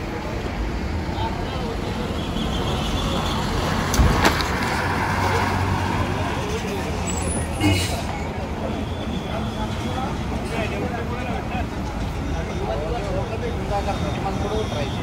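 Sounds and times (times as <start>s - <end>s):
bus diesel engine passing: 0.0s - 14.7s.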